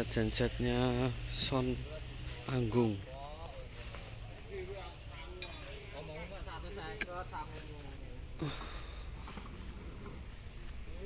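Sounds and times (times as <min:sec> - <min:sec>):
faint background voices talking: 0:00.0 - 0:11.0.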